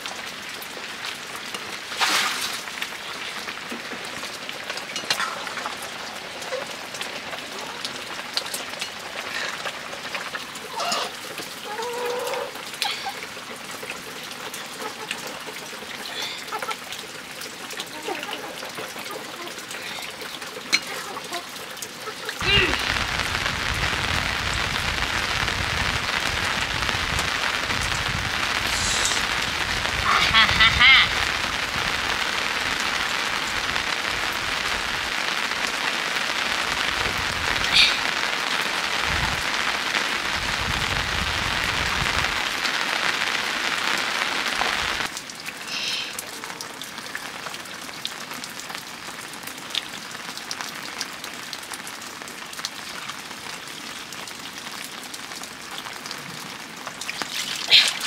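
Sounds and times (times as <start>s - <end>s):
rain on roof and wet ground: 0.0s - 58.0s.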